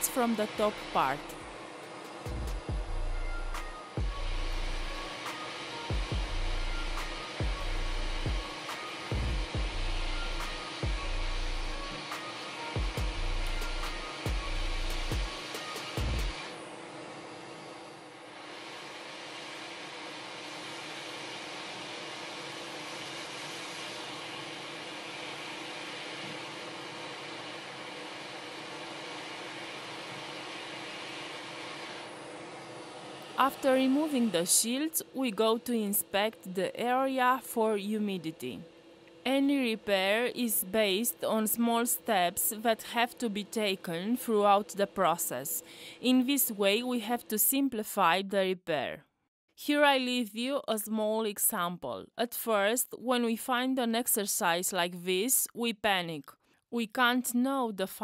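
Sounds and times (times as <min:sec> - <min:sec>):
hot air station hissing: 0:00.0 - 0:36.3, 0:43.7 - 0:46.1
music with heavy bass beat: 0:02.2 - 0:05.1, 0:05.9 - 0:11.9, 0:12.8 - 0:16.4.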